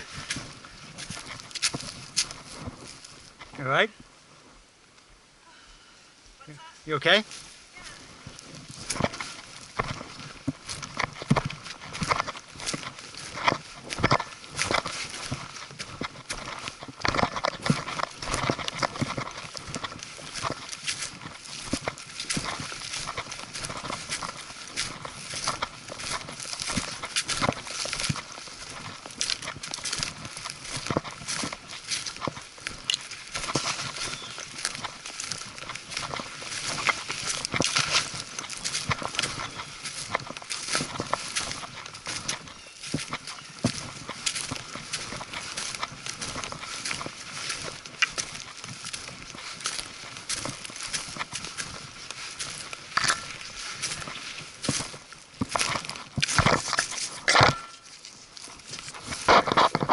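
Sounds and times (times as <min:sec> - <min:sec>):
footsteps crunching through leaves: 0:00.0 - 0:04.7, 0:06.4 - 0:59.9
brush rustling: 0:00.0 - 0:05.2, 0:06.0 - 0:59.9.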